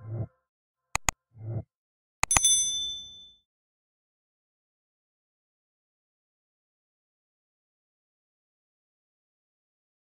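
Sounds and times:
quick clicks: 0:01.0 - 0:01.2
bright high bell ding: 0:02.3 - 0:03.4.

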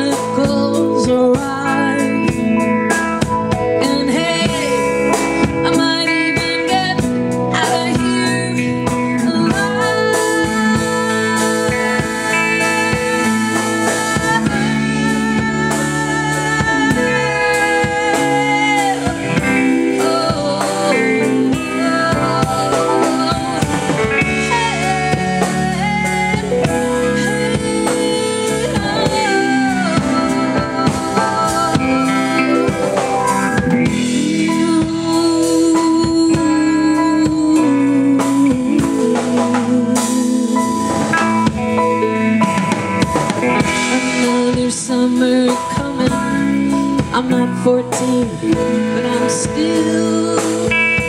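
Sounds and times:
drum kit: 0:00.0 - 0:51.0
electric bass: 0:00.0 - 0:51.0
electric guitar: 0:00.0 - 0:51.0
keyboard: 0:00.0 - 0:51.0
woman singing lead: 0:00.0 - 0:51.0.

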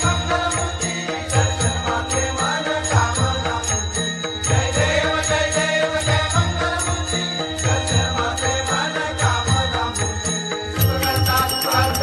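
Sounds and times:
devotional chanting music: 0:00.0 - 0:12.0
jingling cymbal strikes: 0:00.0 - 0:12.0.

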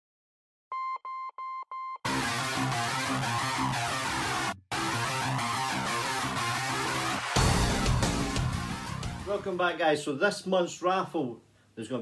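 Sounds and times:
short electronic beeps: 0:00.7 - 0:02.1.

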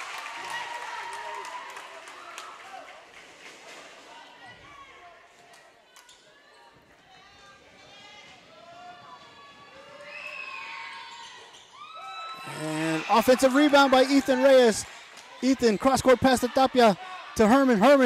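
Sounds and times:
crowd and player voices: 0:00.0 - 0:18.0.

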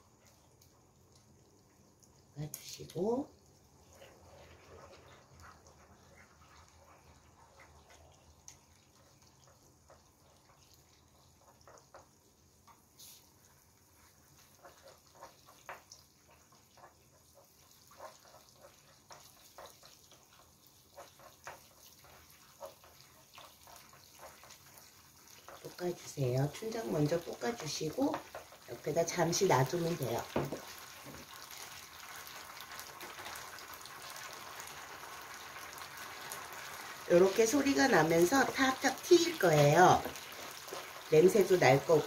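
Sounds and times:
paste sizzling in oil: 0:00.0 - 0:42.0
wooden spoon stirring: 0:03.0 - 0:33.5, 0:36.3 - 0:42.0.

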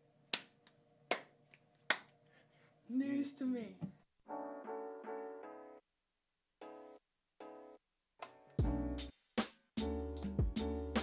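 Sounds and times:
sharp palm slaps: 0:00.3 - 0:02.1
faint hand claps: 0:00.3 - 0:02.2.

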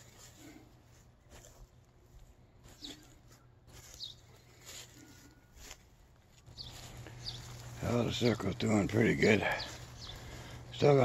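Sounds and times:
footsteps through dry grass: 0:00.0 - 0:11.0
high bird chirps: 0:02.7 - 0:04.4, 0:06.5 - 0:08.4.

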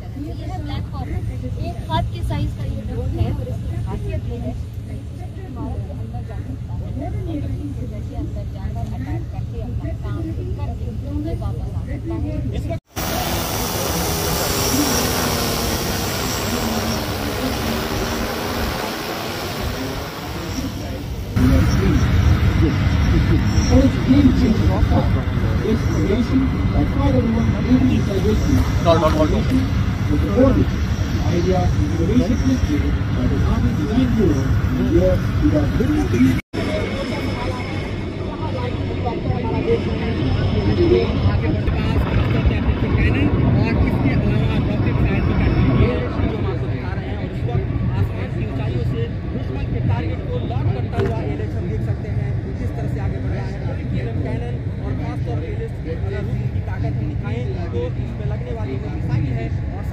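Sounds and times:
helicopter rotor and engine rumble: 0:00.0 - 0:59.9
drone rotors whirring: 0:12.9 - 0:36.4
low loud sound: 0:12.9 - 0:47.8
indistinct voices: 0:13.0 - 0:46.9.

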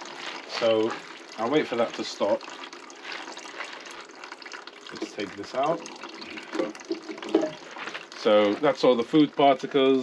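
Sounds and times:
water draining down a pipe: 0:00.0 - 0:10.0.

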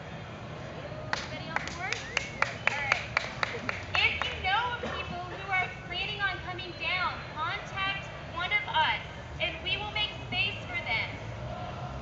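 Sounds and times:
people clapping: 0:01.1 - 0:05.1.

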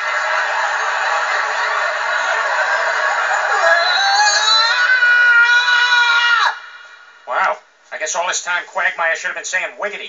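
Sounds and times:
high-pitched scream: 0:03.4 - 0:06.9.

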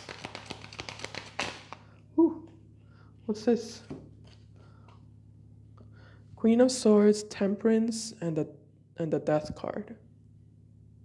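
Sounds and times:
cards being shuffled: 0:00.0 - 0:01.9
faint steady hum: 0:00.0 - 0:11.0.

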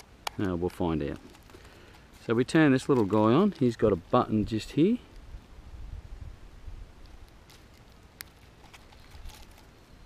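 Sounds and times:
wind rumbling on microphone: 0:04.0 - 0:07.3.

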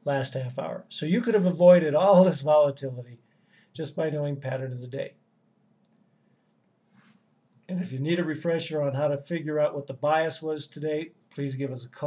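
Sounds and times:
faint click: 0:05.8 - 0:07.7.

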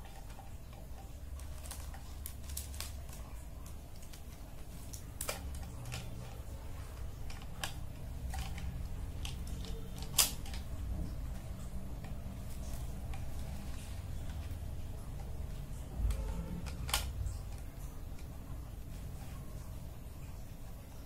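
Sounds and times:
plastic pens clicking together: 0:00.0 - 0:10.8, 0:16.1 - 0:18.4.

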